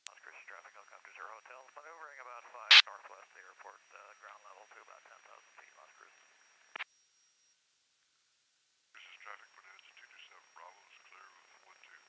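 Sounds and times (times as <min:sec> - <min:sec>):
faint radio voice transmission: 0:00.0 - 0:06.3, 0:09.0 - 0:12.0.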